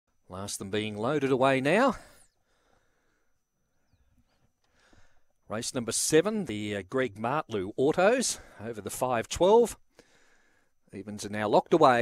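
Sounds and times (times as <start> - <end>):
man's voice: 0.3 - 2.1, 5.5 - 9.8, 11.0 - 12.0.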